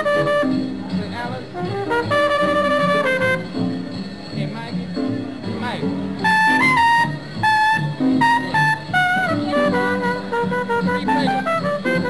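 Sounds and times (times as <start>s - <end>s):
jazz horn playing high notes: 0.0s - 4.1s, 6.1s - 12.0s
lower jazz accompaniment: 0.0s - 12.0s.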